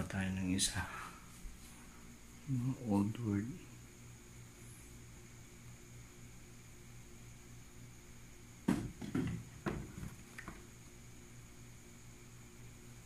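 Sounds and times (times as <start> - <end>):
steady low hum: 0.0 - 13.0
plastic enclosures knocking: 8.6 - 10.6.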